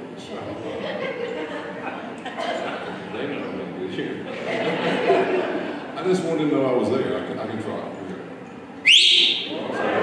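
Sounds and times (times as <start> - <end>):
person whistling upward: 8.8 - 9.5.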